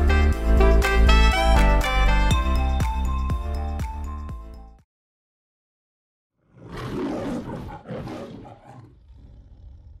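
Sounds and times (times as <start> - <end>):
lion roar: 6.4 - 10.0.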